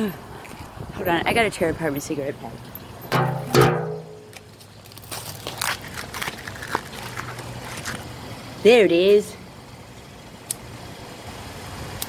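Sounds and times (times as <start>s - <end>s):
wrapper crinkling: 4.4s - 8.0s.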